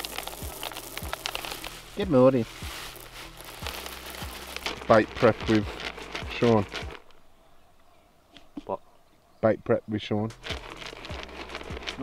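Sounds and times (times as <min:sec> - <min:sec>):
pellets pattering into plastic bucket: 0:00.0 - 0:07.1, 0:10.3 - 0:12.0
bag crinkling: 0:00.0 - 0:07.2, 0:10.3 - 0:12.0.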